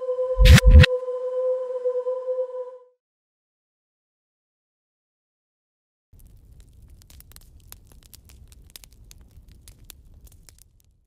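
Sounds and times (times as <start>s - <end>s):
open fire crackling: 6.1s - 11.0s
sharp pops of fire: 6.2s - 11.0s.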